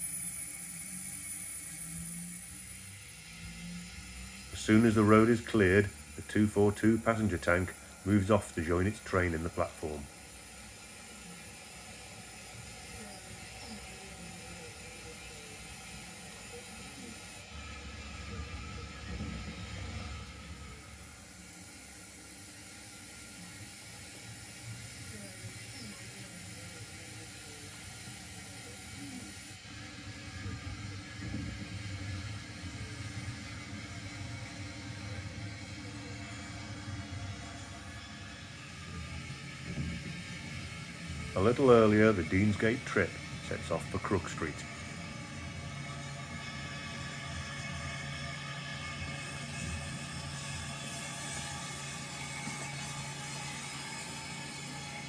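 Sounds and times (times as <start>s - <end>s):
model train rumbling on track: 0.0s - 55.0s.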